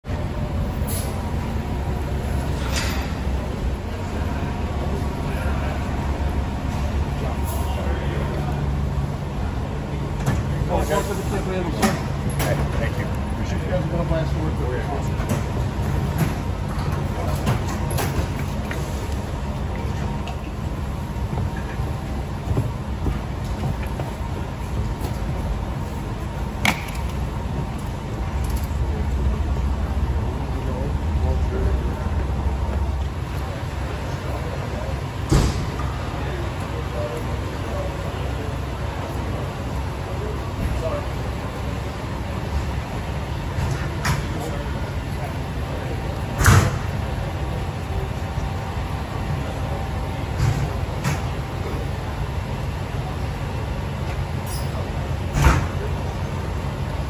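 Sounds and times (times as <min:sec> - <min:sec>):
bus diesel engine rumbling: 0:00.0 - 0:57.0
motor coach idling: 0:00.1 - 0:57.0.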